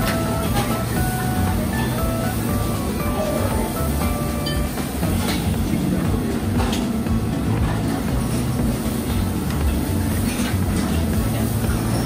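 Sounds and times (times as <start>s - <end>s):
gas wok burner rumble: 0.0s - 12.0s
kitchen noise: 0.0s - 12.0s
wok stir-frying: 0.0s - 12.0s.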